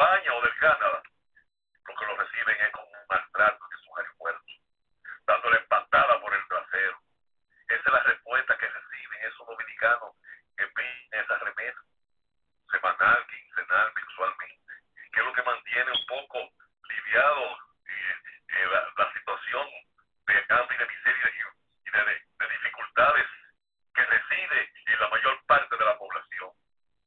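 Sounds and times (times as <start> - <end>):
person talking over telephone: 0.0 - 1.2, 1.9 - 7.1, 7.7 - 12.0, 12.7 - 26.6.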